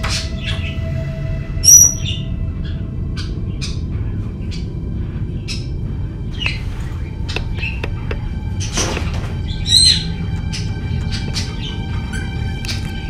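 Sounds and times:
low steady music drone: 0.0 - 13.0.

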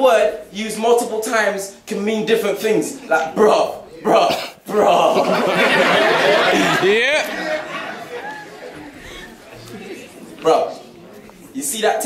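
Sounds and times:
faint murmur of audience chatter: 1.6 - 12.0.

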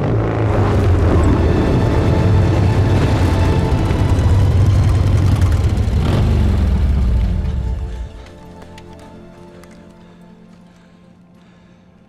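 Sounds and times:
motorcycle engines rumbling: 0.0 - 10.1.

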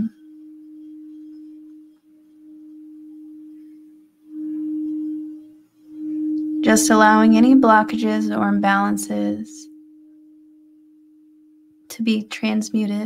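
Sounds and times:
singing bowl pure tone: 0.0 - 12.8.

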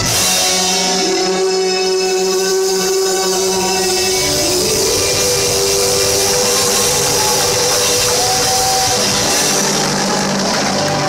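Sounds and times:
church band playing: 0.0 - 11.0
singers holding notes: 0.2 - 11.0.

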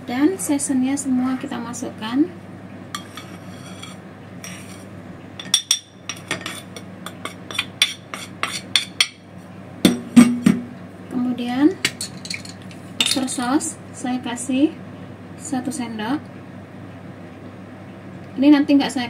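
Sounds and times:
spoon scraping porcelain: 3.0 - 9.2
spoon knocking on bowl: 9.9 - 10.6.

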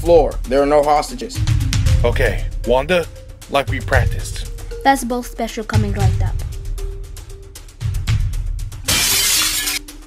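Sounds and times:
background music with steady beat: 0.0 - 10.0
glass shattering: 8.9 - 9.9.

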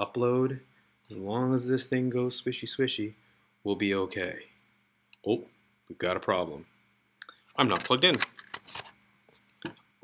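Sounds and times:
cable rustling: 7.6 - 9.0.

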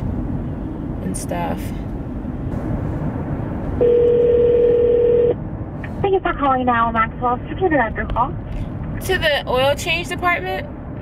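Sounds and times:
road noise in car cabin: 0.0 - 11.0
telephone ringback tone: 3.8 - 5.3.

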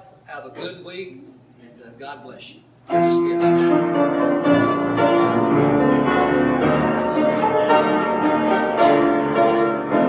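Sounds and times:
slow piano music: 2.9 - 10.0.

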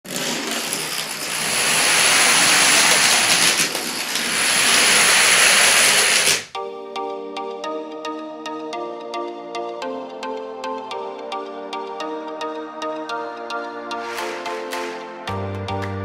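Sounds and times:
plastic dominoes clattering: 0.0 - 6.5
background music: 6.5 - 16.0.

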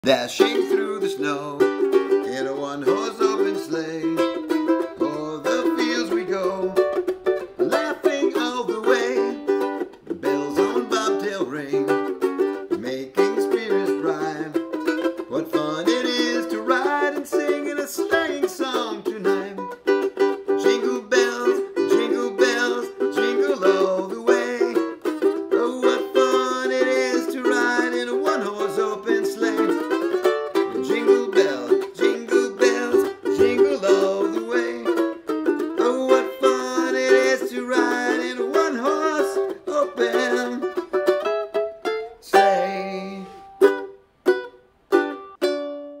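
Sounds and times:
ukulele strumming: 0.0 - 46.0.

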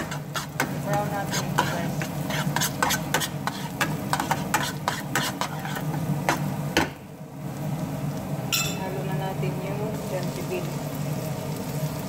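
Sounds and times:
metal spoon scraping a metal pan: 0.0 - 6.0
fat sizzling: 0.0 - 6.7, 7.4 - 12.0.

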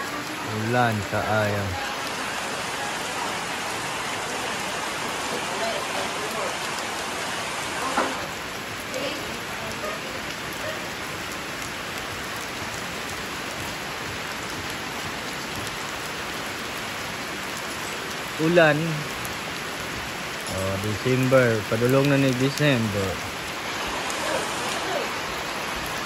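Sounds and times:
person's voice: 0.0 - 3.1, 18.4 - 19.1, 20.5 - 23.3
steady rain falling: 0.0 - 26.0.

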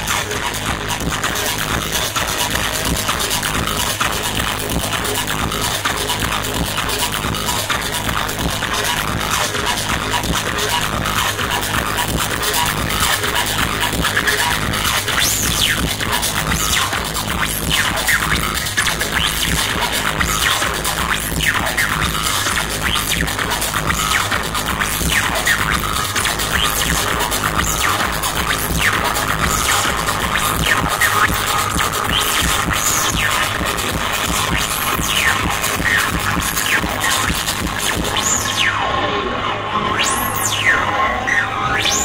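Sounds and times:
loud electronic music: 0.0 - 42.0
sweeping pitch effects: 24.9 - 42.0
held high tone: 37.9 - 42.0.

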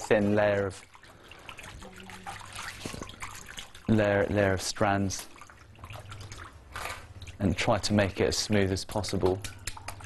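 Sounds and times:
faint water trickling: 0.0 - 10.0.

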